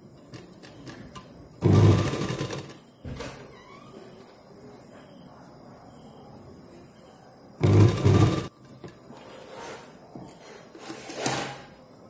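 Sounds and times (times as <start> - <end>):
sewing machine stitching: 0.3 - 2.8, 7.6 - 8.5.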